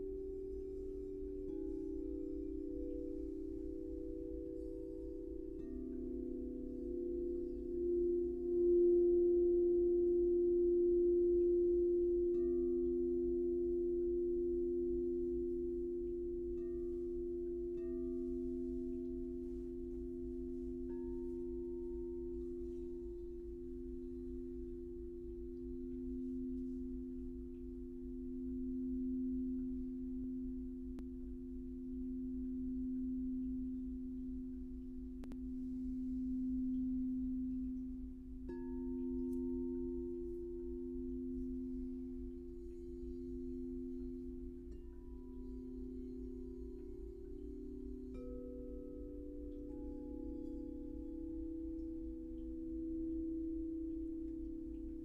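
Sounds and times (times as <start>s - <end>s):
singing bowls ringing: 0.0s - 55.0s.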